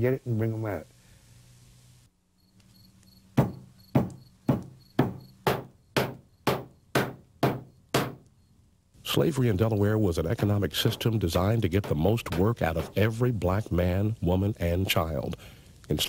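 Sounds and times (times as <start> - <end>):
dough pounded on wooden board: 3.4 - 8.2.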